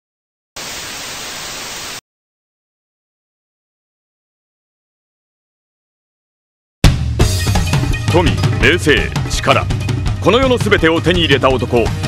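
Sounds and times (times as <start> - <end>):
tv static hiss: 0.6 - 2.0.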